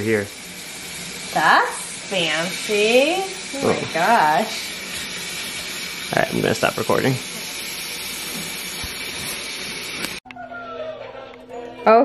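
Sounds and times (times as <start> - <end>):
steady hiss: 0.0 - 10.2.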